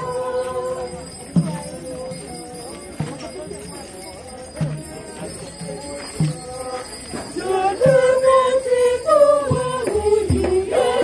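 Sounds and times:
jingling rattle: 0:00.0 - 0:11.0
voices singing: 0:00.0 - 0:11.0.

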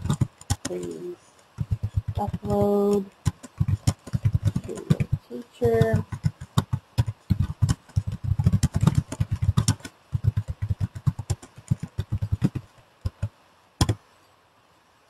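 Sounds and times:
computer keyboard typing: 0:00.0 - 0:14.0.

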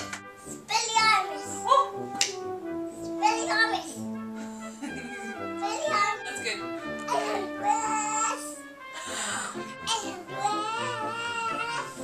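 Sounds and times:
background music with held notes: 0:00.0 - 0:12.0
toddler whining: 0:07.1 - 0:08.6, 0:09.9 - 0:12.0.

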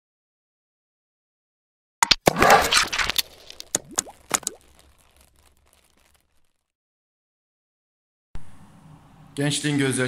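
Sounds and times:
pops with upward-sliding pitch: 0:02.0 - 0:06.4.

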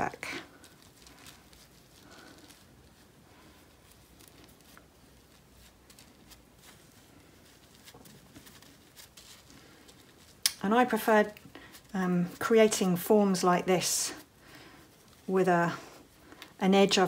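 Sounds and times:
hands pressing wet wool: 0:00.0 - 0:17.0.

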